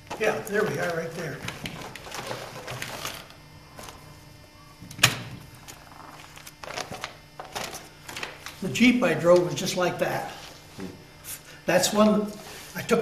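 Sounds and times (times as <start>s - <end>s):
papers being handled: 0.1s - 4.2s, 5.6s - 9.6s.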